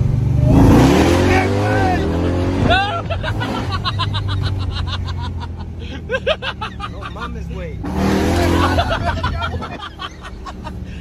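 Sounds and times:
engine revving at full throttle: 0:00.0 - 0:11.0
road noise rush: 0:00.0 - 0:11.0.

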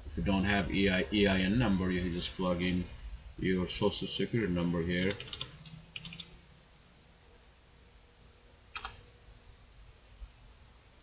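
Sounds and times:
computer keyboard typing: 0:05.0 - 0:06.4, 0:08.8 - 0:09.0.

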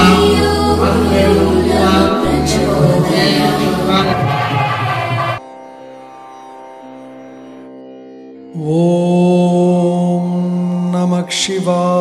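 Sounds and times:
steady drone: 0:00.0 - 0:05.4.

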